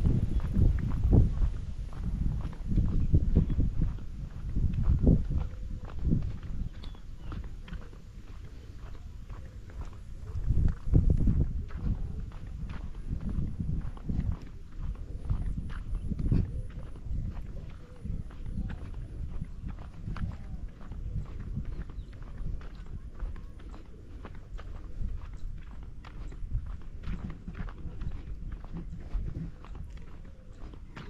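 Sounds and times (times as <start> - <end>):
footsteps on dirt path: 0.0 - 31.0
wind gusts on microphone: 0.0 - 31.0.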